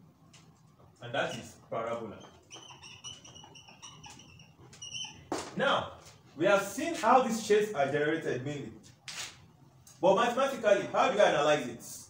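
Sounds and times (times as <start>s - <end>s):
marker squeaking on whiteboard: 0.2s - 6.3s, 9.0s - 9.6s.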